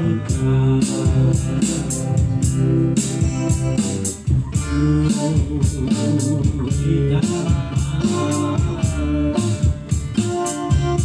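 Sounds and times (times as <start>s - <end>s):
electric guitar: 0.0s - 11.0s
electronic drum kit: 0.0s - 11.0s.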